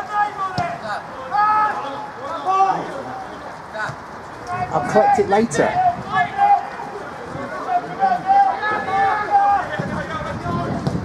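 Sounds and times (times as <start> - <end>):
footballers shouting: 0.0 - 11.0.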